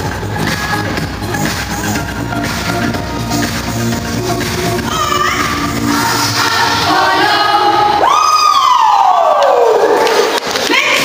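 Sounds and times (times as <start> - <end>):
backing music: 0.0 - 8.1.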